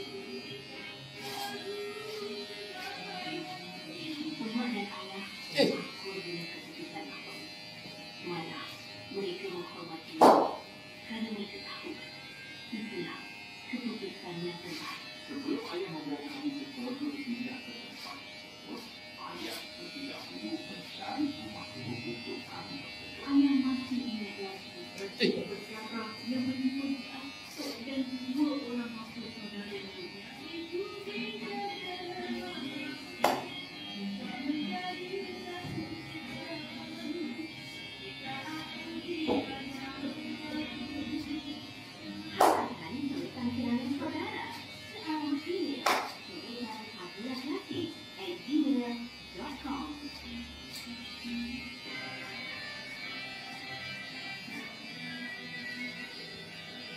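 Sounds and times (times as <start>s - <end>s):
electric hair clippers buzzing: 0.0s - 56.9s.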